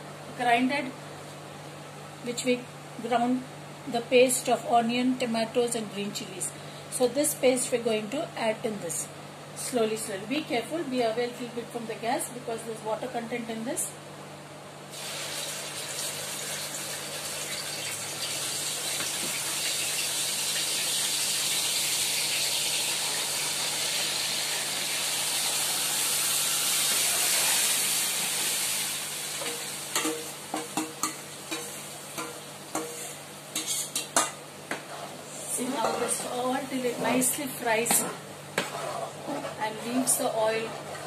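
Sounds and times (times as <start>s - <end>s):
paste sizzling in hot oil: 14.9s - 30.3s.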